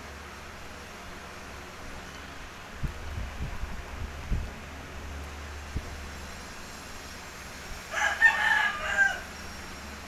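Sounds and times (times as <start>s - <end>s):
rooster crowing: 7.9s - 9.5s.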